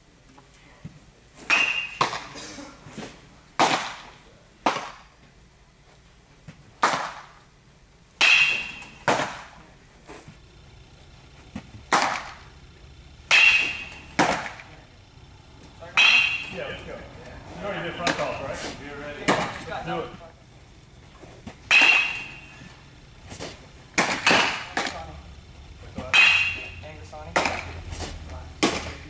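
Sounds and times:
baseballs smacking into gloves: 1.4 - 2.4, 3.0 - 5.2, 6.4 - 7.5, 8.1 - 9.6, 10.3 - 12.5, 13.2 - 14.9, 19.2 - 19.6, 21.4 - 25.0, 25.9 - 29.0.

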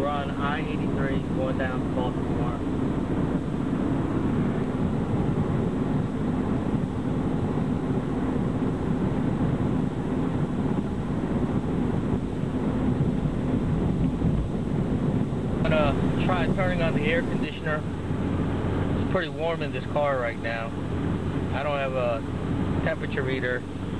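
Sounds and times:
car cabin road noise: 0.0 - 23.9.

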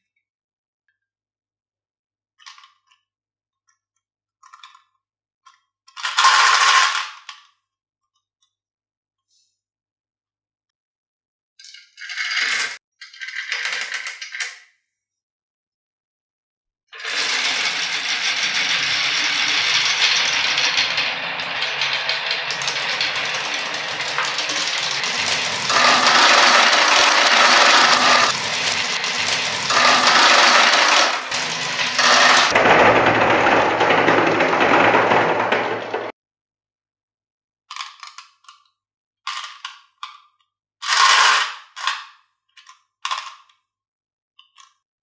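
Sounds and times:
marbles rolling on wooden tracks: 6.0 - 7.4, 17.0 - 36.1, 40.8 - 41.9.

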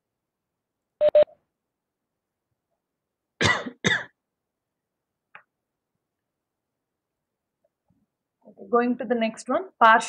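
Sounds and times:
short beeps: 1.0 - 1.3
person coughing: 3.4 - 4.2.

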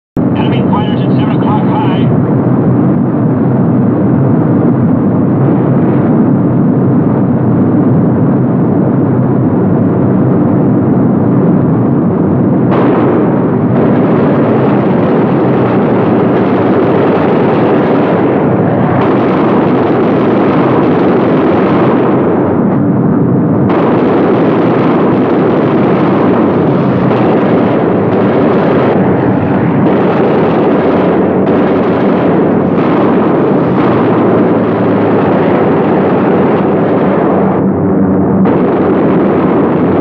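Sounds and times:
aircraft engines droning: 0.2 - 5.8, 31.1 - 39.0.

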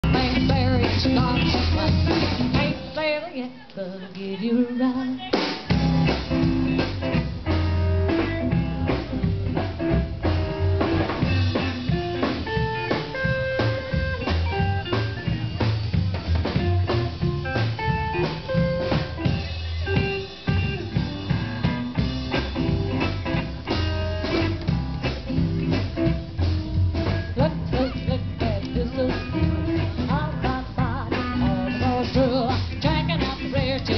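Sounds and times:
steady drum beat: 0.0 - 3.1, 5.1 - 33.9.

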